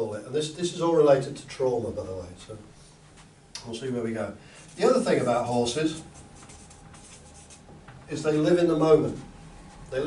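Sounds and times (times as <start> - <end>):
marker pen writing on paper: 5.9 - 7.7.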